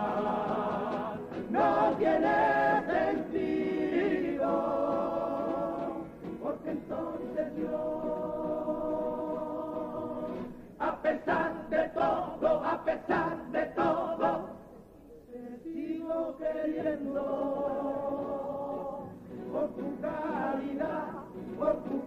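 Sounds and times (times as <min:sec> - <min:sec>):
male choir singing in harmony: 0:00.0 - 0:22.0.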